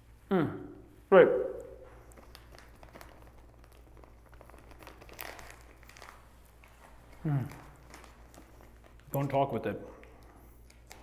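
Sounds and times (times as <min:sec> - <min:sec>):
mouth clicks and crackles: 0:01.6 - 0:11.0.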